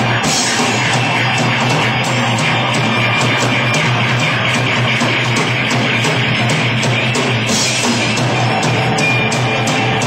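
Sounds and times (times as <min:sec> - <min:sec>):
live rock band playing: 0:00.0 - 0:10.0
loud electric guitar: 0:00.0 - 0:10.0.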